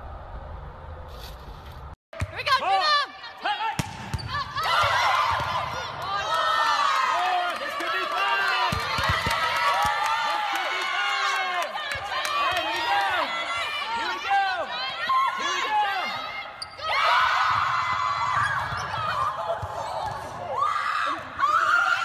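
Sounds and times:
sneakers squeaking on gym floor: 0:16.6 - 0:17.0, 0:18.5 - 0:20.2.

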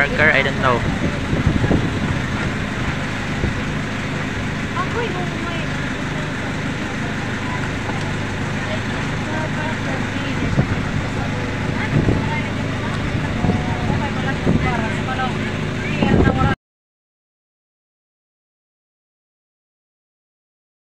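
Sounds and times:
boat engine running: 0:00.0 - 0:16.6
water churning around hull: 0:00.0 - 0:16.6.

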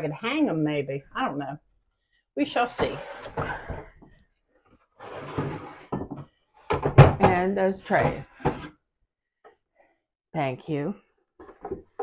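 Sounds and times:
items rustling and sliding: 0:02.6 - 0:07.0, 0:07.8 - 0:08.8.

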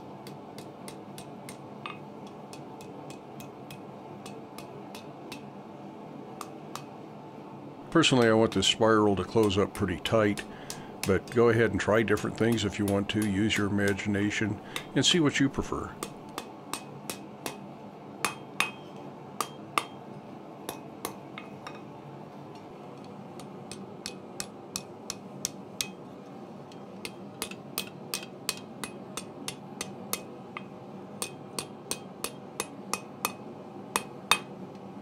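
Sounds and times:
hammer striking hot steel on anvil: 0:00.1 - 0:05.6, 0:06.4 - 0:07.0, 0:08.0 - 0:21.9, 0:23.0 - 0:26.0, 0:26.7 - 0:34.6.

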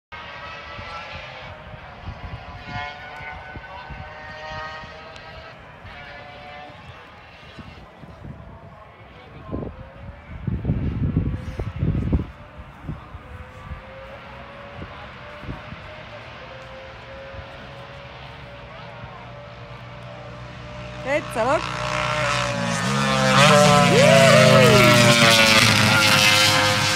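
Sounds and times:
distant racing engine: 0:00.2 - 0:26.9
spectator chatter: 0:23.4 - 0:26.2.

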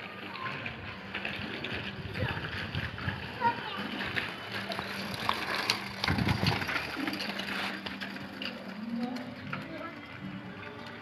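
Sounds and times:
bicycle frame rattling: 0:00.0 - 0:11.0
bicycle tyres grinding on concrete: 0:00.0 - 0:11.0.

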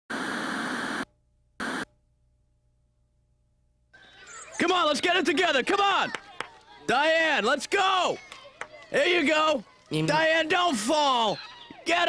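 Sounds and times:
television static hiss: 0:00.1 - 0:01.0, 0:01.6 - 0:01.8.

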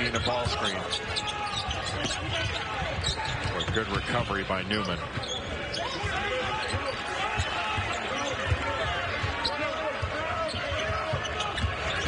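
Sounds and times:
sneakers squeaking: 0:00.0 - 0:12.0.

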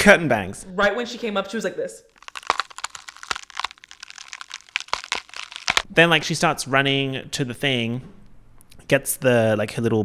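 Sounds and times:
small clicks and crackles: 0:02.2 - 0:05.8.

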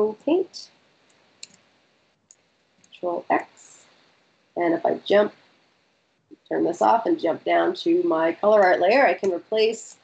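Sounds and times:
computer clicks: 0:01.4 - 0:01.6.

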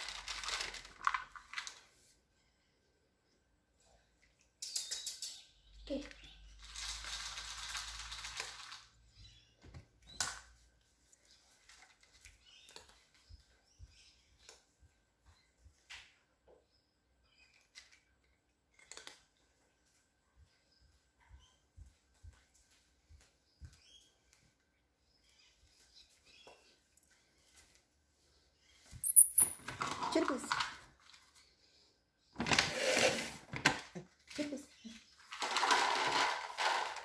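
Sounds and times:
cat crunching dry kibble: 0:18.7 - 0:19.4.

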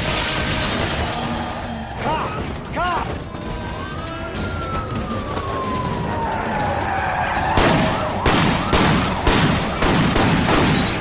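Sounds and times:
police siren wailing: 0:00.3 - 0:10.0.

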